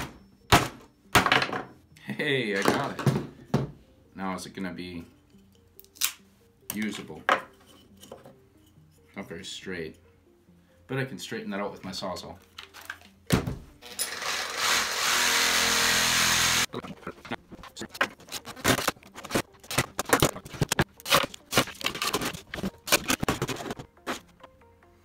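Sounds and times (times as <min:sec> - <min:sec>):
reciprocating saw cutting wood: 0:14.0 - 0:16.7.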